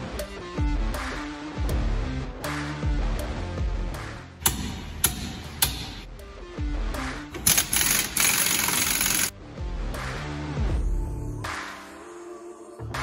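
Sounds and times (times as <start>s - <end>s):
background music: 0.0s - 13.0s
air tool running: 7.4s - 9.3s.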